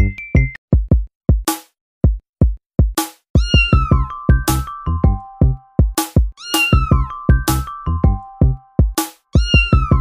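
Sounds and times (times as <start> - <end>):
electronic music with drum beat: 0.7 - 10.0
kitten meowing: 3.4 - 4.2, 6.3 - 7.3, 9.3 - 10.0.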